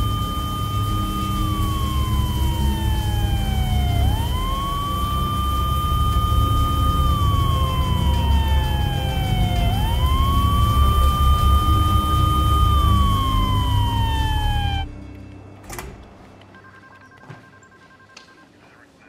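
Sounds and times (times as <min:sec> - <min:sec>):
emergency vehicle siren wailing: 0:00.0 - 0:15.0
heavy low rumble: 0:00.0 - 0:16.5
steady high tone: 0:00.0 - 0:18.3.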